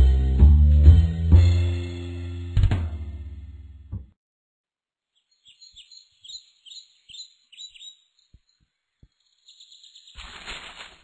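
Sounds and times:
songbird chirping: 0:05.0 - 0:10.4.

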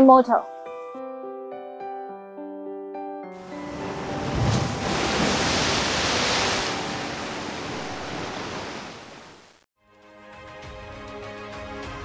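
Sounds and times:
soft background music: 0:00.0 - 0:08.6.

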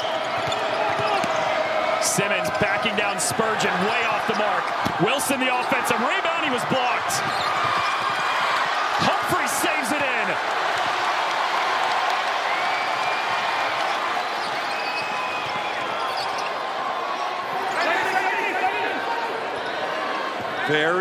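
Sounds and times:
sneaker squeaks: 0:00.0 - 0:01.4, 0:07.2 - 0:08.4, 0:13.8 - 0:16.6
arena crowd noise: 0:00.0 - 0:21.0.

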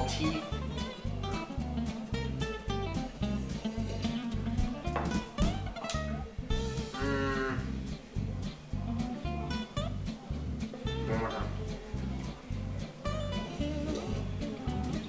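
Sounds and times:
pulsing low beat: 0:00.0 - 0:14.8
plucked guitar notes: 0:00.0 - 0:15.0.

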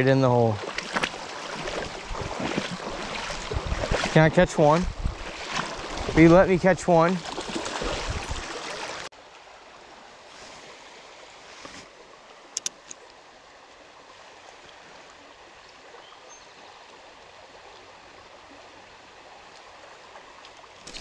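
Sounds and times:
creek running: 0:00.0 - 0:21.0.

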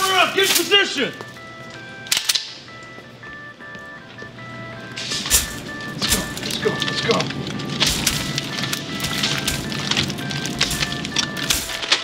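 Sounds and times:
electronic jingle melody: 0:00.0 - 0:12.0.

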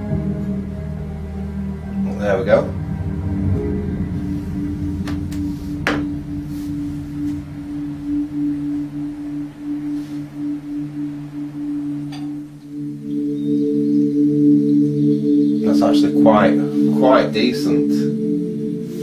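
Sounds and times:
ambient music with held tones: 0:00.0 - 0:19.0.

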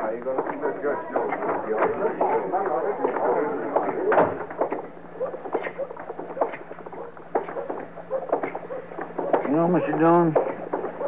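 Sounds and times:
faint steady hum: 0:00.0 - 0:11.0
footsteps walking: 0:00.3 - 0:11.0.

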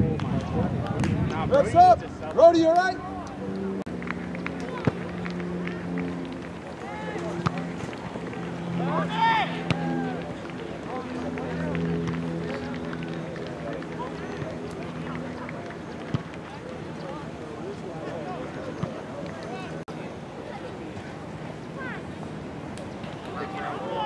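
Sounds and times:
loud shout: 0:08.8 - 0:10.2.

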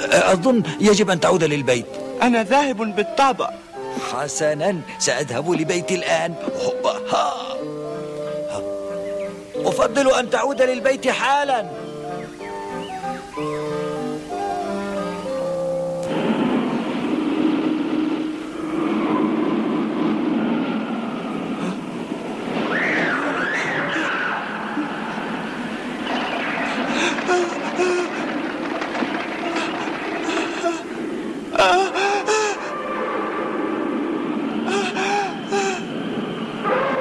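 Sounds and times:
steady hiss: 0:00.0 - 0:37.0
strong wind rushing through trees: 0:00.0 - 0:37.0
rising whistle-like glide: 0:16.1 - 0:27.7, 0:32.6 - 0:37.0
high-pitched voice crying: 0:31.6 - 0:32.7.

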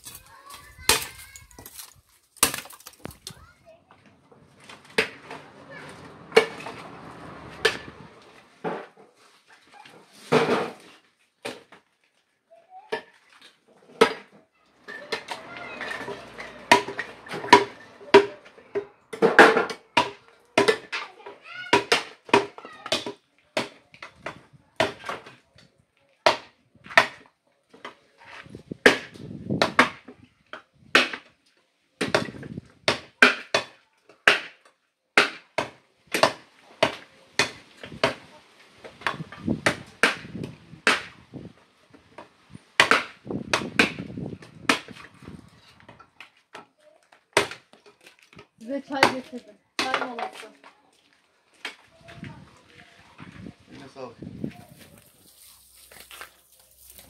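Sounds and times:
firewood logs clattering: 0:00.0 - 0:12.0, 0:13.8 - 0:25.4, 0:26.2 - 0:31.3, 0:32.0 - 0:50.7, 0:54.2 - 0:57.0.

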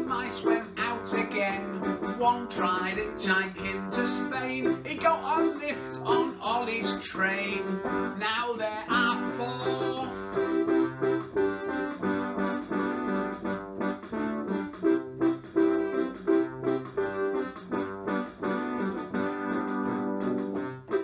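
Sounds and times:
electronic keyboard chords: 0:07.4 - 0:21.0.

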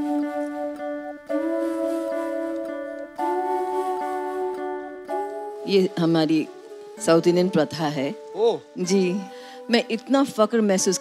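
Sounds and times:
background music of held chords: 0:00.0 - 0:11.0.

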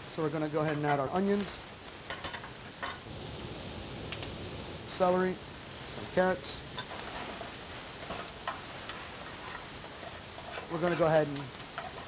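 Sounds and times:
onions sizzling in oil: 0:00.0 - 0:12.0
pan and utensil clinks and scrapes: 0:06.8 - 0:12.0.

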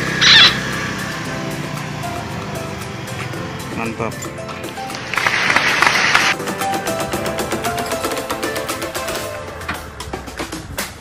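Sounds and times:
background music sustained tones: 0:00.0 - 0:10.8.

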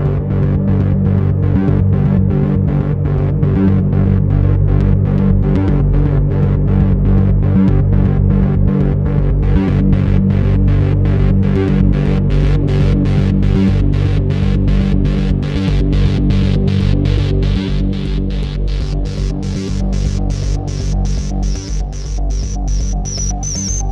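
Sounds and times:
low synthesizer drone: 0:00.0 - 0:23.9
pulsing synthesizer notes: 0:00.0 - 0:23.9.

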